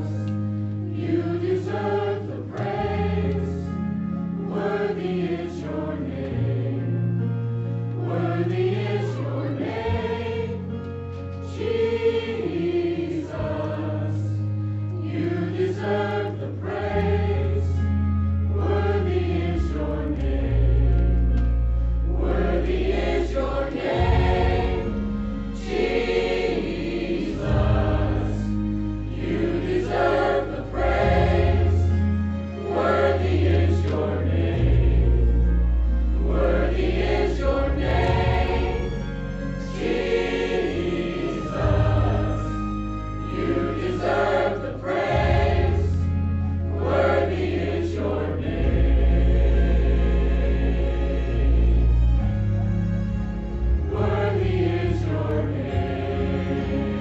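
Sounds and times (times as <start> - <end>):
mixed choir singing: 0.0 - 10.8, 11.4 - 21.4, 22.0 - 52.4, 53.7 - 57.0
low held accompaniment notes: 0.0 - 57.0.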